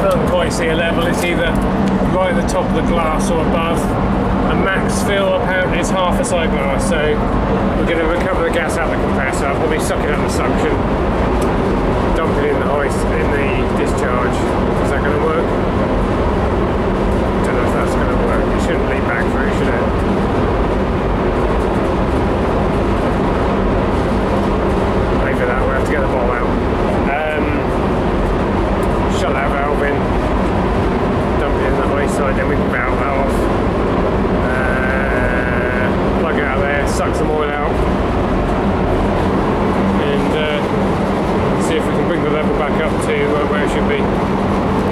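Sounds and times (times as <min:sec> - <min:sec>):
refrigeration machinery hum: 0:00.0 - 0:44.9.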